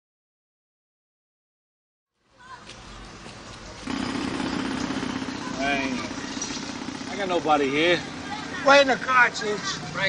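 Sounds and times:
low hum of traffic: 2.1s - 10.0s.

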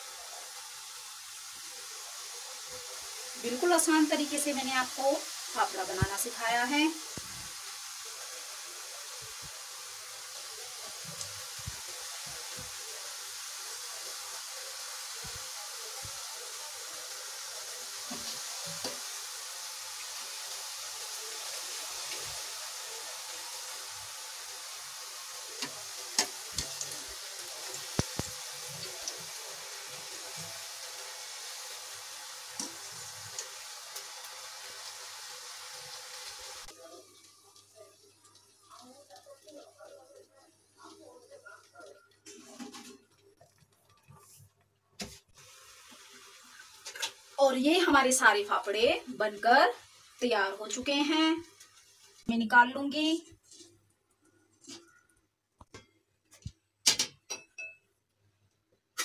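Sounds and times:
dough deep-frying in oil: 0.0s - 59.0s.

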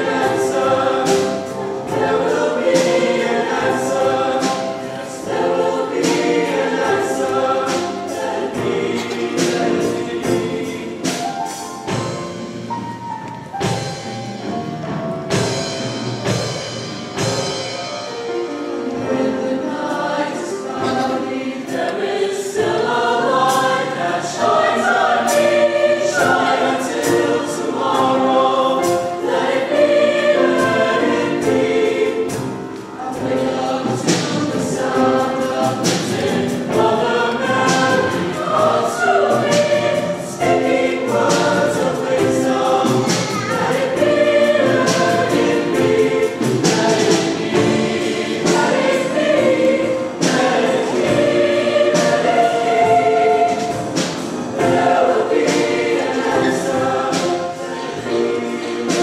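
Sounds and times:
choir singing in parts: 0.0s - 14.5s, 15.3s - 59.0s.

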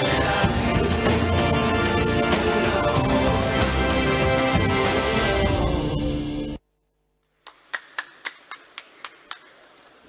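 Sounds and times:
person clapping: 7.4s - 10.0s.

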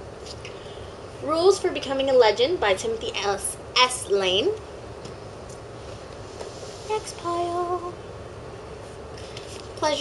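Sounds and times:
room tone hiss: 0.0s - 10.0s
woman speaking: 1.2s - 4.6s.

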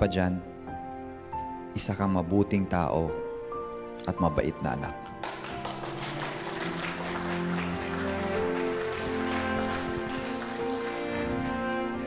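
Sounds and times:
background score music: 0.0s - 12.0s.

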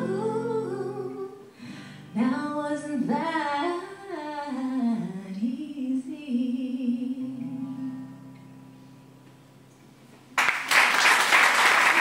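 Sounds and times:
acoustic guitar: 0.0s - 10.6s
woman humming a melody: 4.3s - 8.2s.

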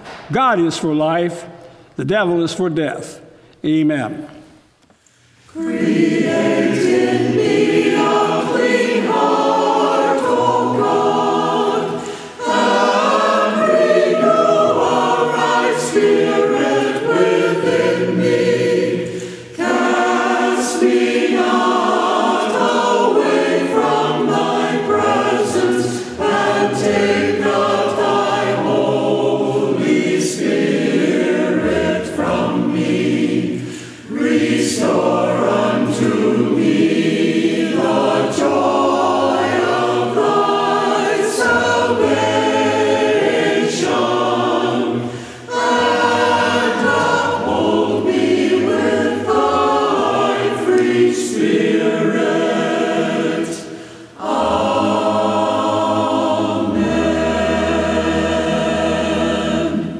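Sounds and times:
church choir singing: 4.4s - 59.9s.

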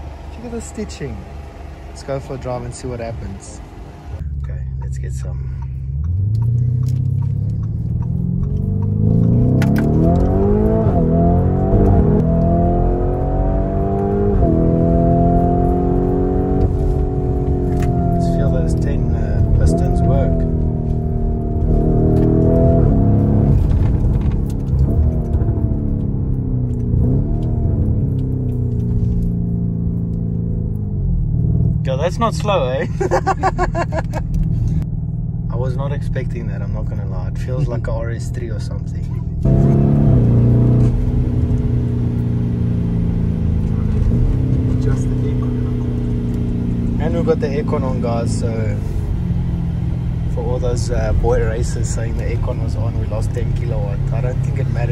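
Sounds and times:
car engine accelerating hard: 0.0s - 54.9s.

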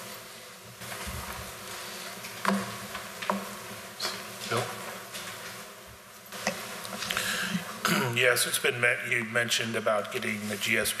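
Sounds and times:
low hiss and murmur: 0.0s - 11.0s.

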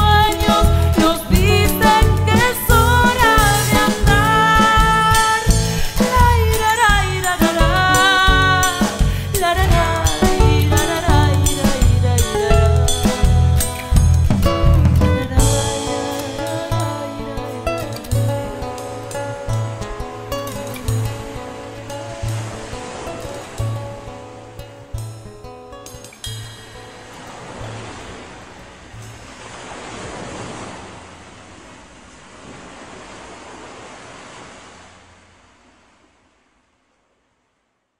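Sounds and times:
bass drum beat: 0.0s - 16.1s
guitars: 0.0s - 29.6s
ocean surf breaking on beach: 0.0s - 36.4s.

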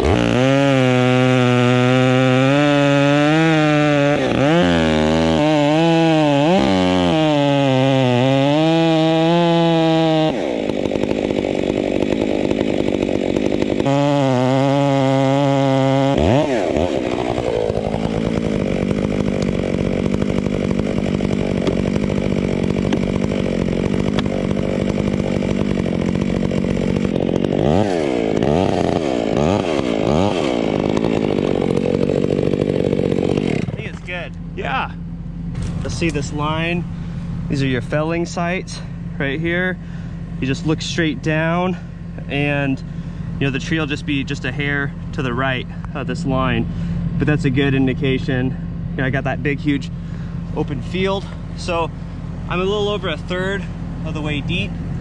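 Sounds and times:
chainsaw cutting wood: 0.0s - 55.0s.

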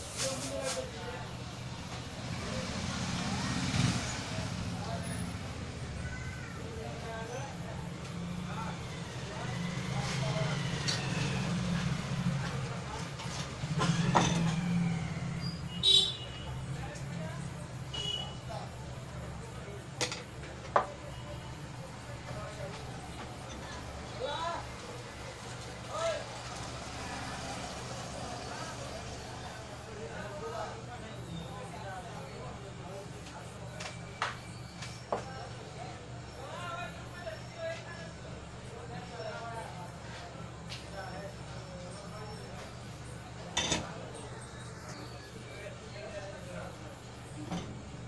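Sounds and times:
faint distant voices: 0.0s - 48.0s.

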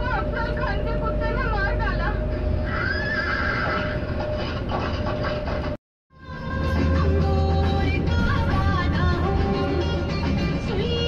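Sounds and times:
horse neighing: 2.7s - 4.1s.

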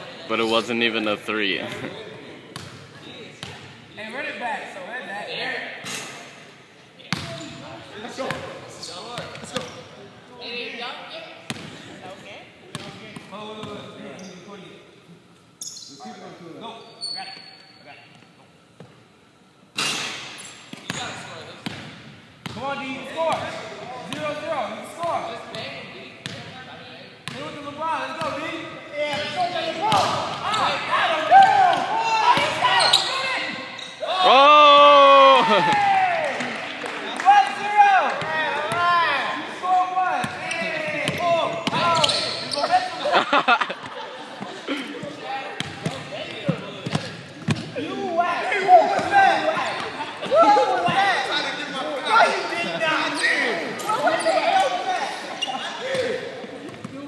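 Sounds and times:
voices talking and calling out: 22.6s - 57.0s
basketball bouncing on gym floor: 45.6s - 47.7s.

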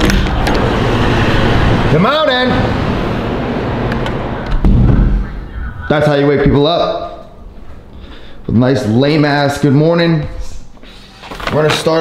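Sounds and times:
loud low rumble: 0.0s - 6.8s
low hum of car traffic: 0.0s - 10.9s.

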